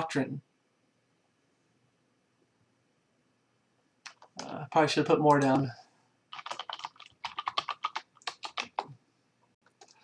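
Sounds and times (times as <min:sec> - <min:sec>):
typing on computer keyboard: 0:04.1 - 0:04.6, 0:05.3 - 0:05.7, 0:06.3 - 0:09.0, 0:09.7 - 0:10.0.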